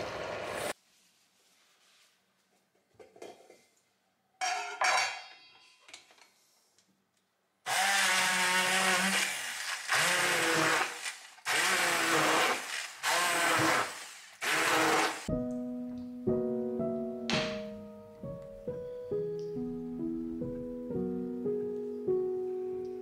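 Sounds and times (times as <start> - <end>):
metallic clanks from saucepan: 4.4 - 5.8
piano music: 15.3 - 23.0.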